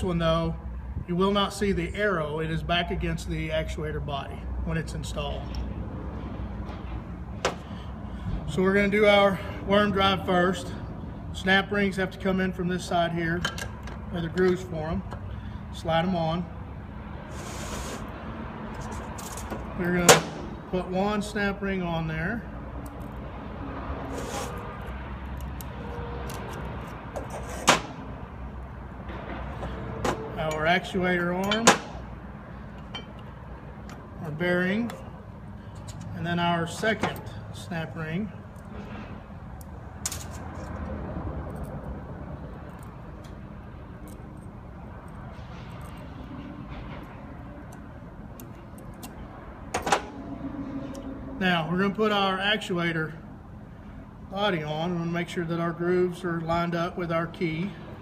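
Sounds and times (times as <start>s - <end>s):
low shop hum: 0.0s - 58.0s.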